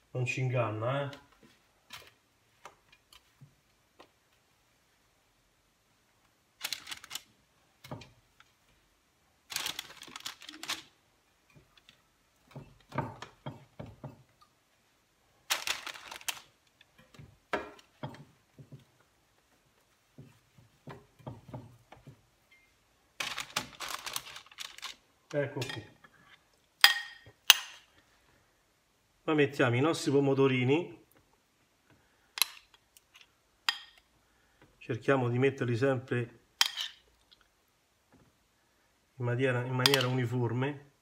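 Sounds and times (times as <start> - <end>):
parchment paper rustling: 6.3 - 7.4, 9.4 - 13.4, 15.4 - 22.3, 23.1 - 25.4.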